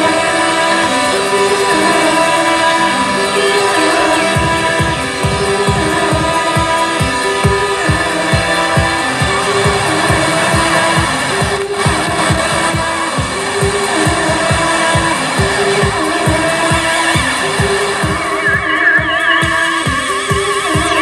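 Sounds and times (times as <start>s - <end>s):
repeating synth line: 0.0s - 21.0s
fast steady kick drum: 4.3s - 21.0s.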